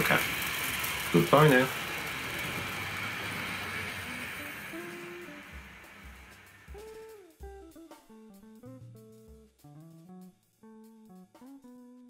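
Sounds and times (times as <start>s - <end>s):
model train rattling hum: 0.0s - 7.0s
soft guitar music: 3.7s - 12.0s.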